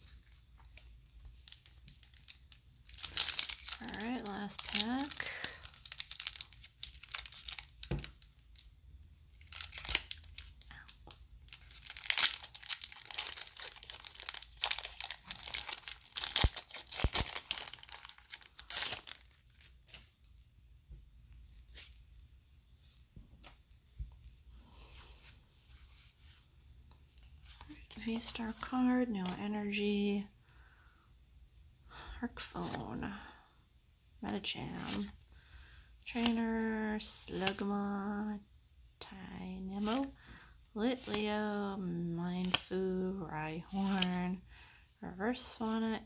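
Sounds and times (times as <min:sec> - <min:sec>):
foil wrapper tearing and crinkling: 0:01.4 - 0:08.6, 0:09.4 - 0:10.9, 0:11.5 - 0:20.1.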